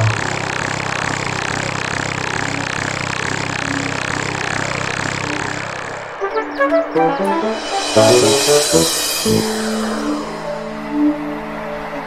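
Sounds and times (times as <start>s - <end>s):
mechanical whirring hum: 0.0s - 12.0s.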